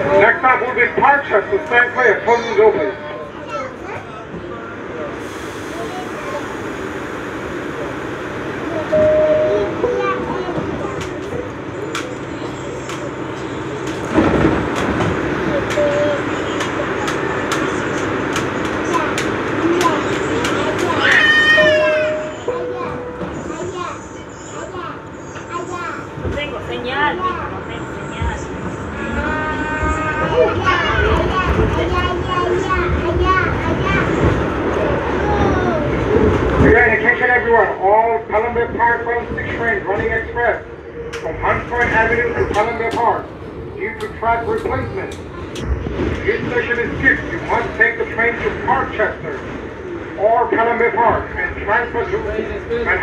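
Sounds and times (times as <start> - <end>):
passengers chattering: 0.0 - 53.0
subway train background noise: 0.0 - 53.0
children's voices: 2.3 - 6.9, 7.9 - 36.5, 41.8 - 45.7.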